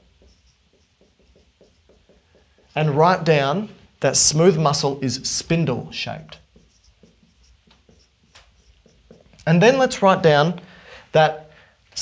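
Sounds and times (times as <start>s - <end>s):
marker writing on whiteboard: 0.0s - 3.7s, 5.4s - 10.3s.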